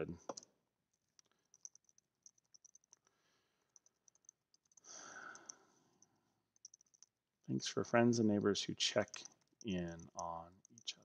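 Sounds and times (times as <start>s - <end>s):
soft breath out: 4.8s - 6.1s.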